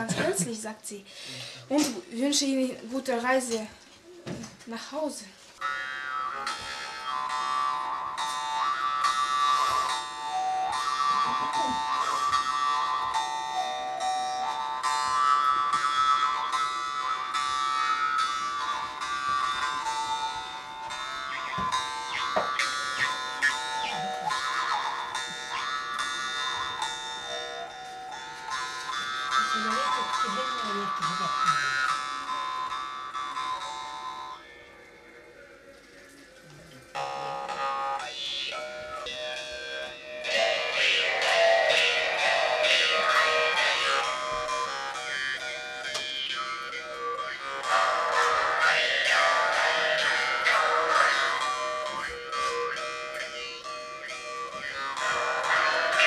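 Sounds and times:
jaw harp played fast: 5.6 - 34.4, 37.0 - 56.0.

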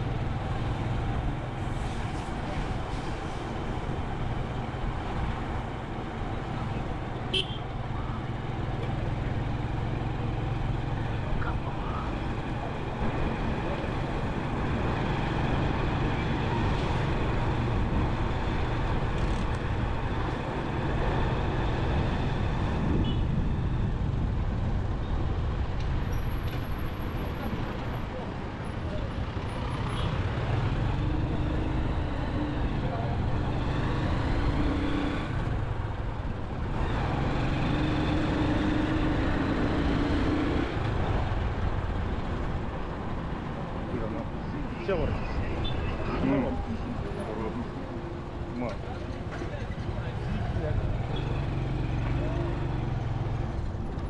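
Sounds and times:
street traffic rumble: 0.0 - 54.0.

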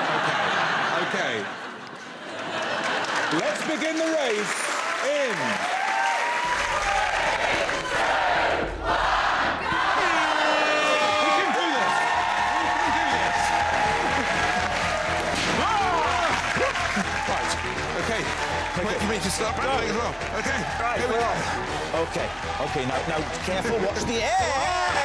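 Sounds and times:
audience clapping and cheering: 0.0 - 25.0
shouted voices: 5.9 - 14.4.

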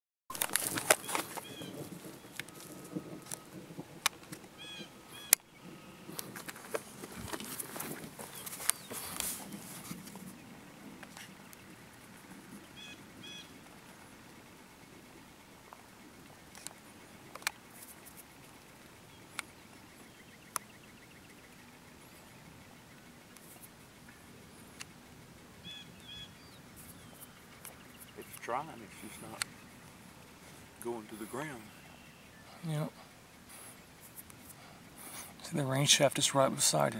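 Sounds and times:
camera handling noise: 0.3 - 1.7
bird chirps: 0.9 - 3.7, 4.5 - 35.4.

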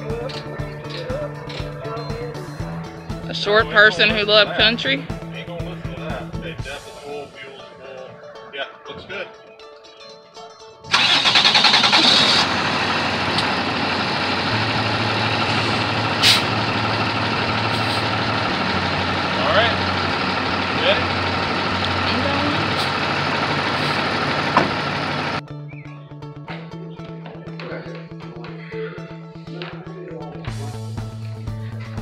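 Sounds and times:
guitar music: 0.0 - 28.2
diesel engine cranking and idling: 10.9 - 25.4
short sharp hiss: 15.6 - 16.5.

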